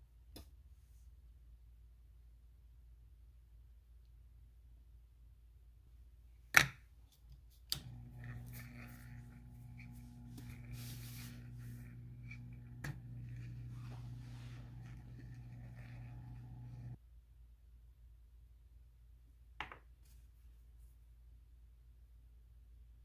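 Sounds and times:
small electric motor humming: 0:07.8 - 0:17.0.

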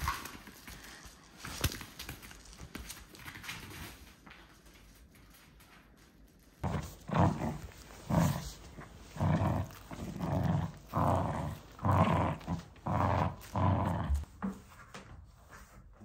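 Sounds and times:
small dog growling in play: 0:06.6 - 0:14.6.

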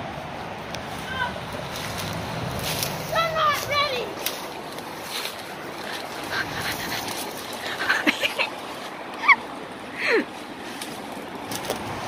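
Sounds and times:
leaves crunching underfoot: 0:00.8 - 0:08.9.

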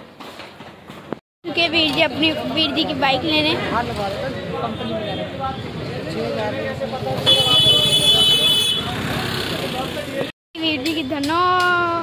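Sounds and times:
street traffic noise: 0:00.0 - 0:12.0
vehicle horn blast: 0:07.2 - 0:09.0.

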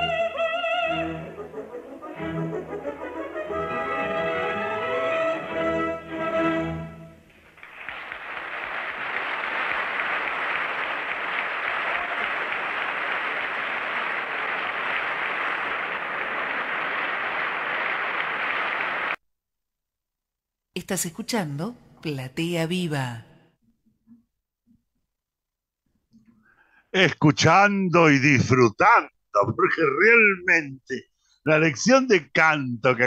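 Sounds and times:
audience applauding: 0:07.3 - 0:19.2.

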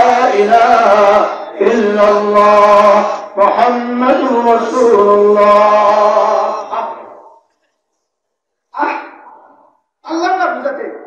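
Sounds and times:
man chanting through microphone: 0:00.0 - 0:07.4.

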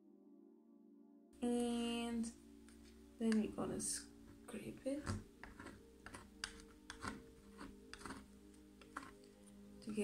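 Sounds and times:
soft background music: 0:00.0 - 0:10.0
plastic scraper on metal plate: 0:05.0 - 0:09.2.

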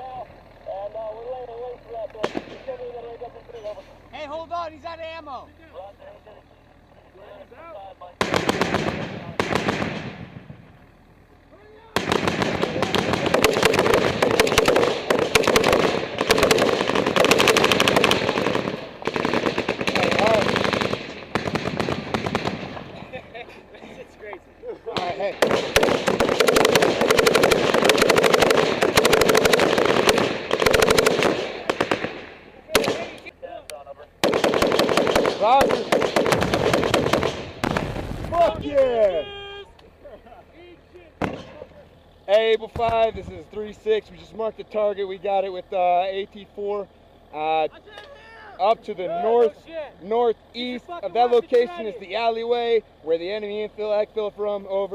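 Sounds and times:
machine gun firing bursts: 0:08.2 - 0:10.6, 0:12.0 - 0:23.0, 0:25.0 - 0:33.3, 0:34.2 - 0:38.2.

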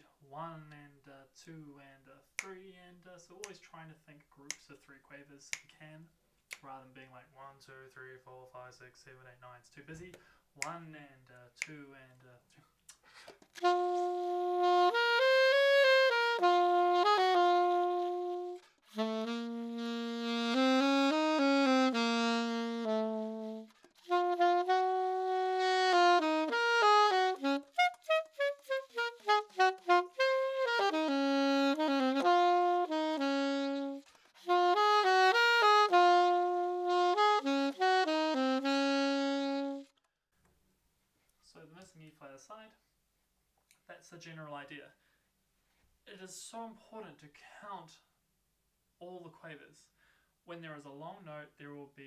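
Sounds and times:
alto saxophone playing slow etude: 0:13.6 - 0:40.0.

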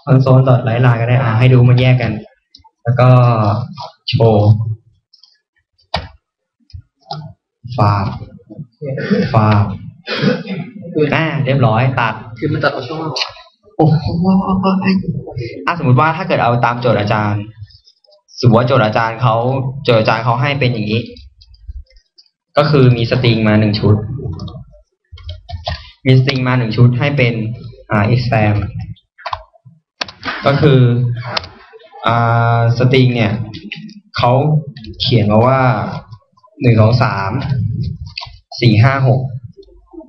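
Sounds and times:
person speaking: 0:00.0 - 0:04.8, 0:06.7 - 0:40.0.

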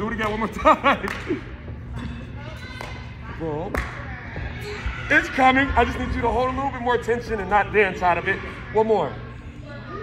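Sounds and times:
low hum of large hall: 0:00.0 - 0:10.0.

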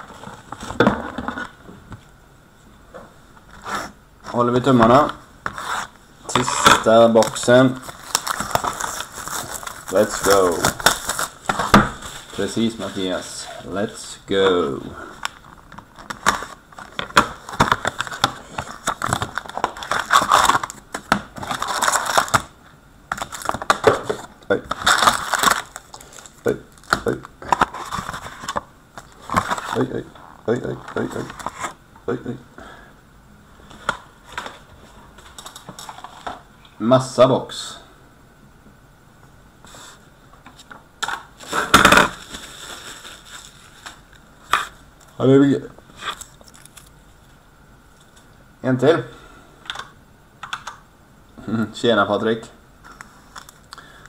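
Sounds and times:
foil packs crinkling and clicking: 0:06.4 - 0:13.3, 0:15.2 - 0:30.0, 0:41.0 - 0:44.6, 0:46.1 - 0:46.9
cardboard tearing and scraping: 0:07.8 - 0:13.2, 0:21.4 - 0:22.5, 0:24.7 - 0:26.3.

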